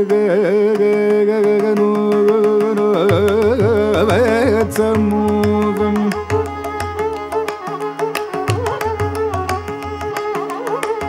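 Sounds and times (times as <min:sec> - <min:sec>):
man singing: 0:00.0 - 0:06.7
violin melody: 0:00.0 - 0:11.0.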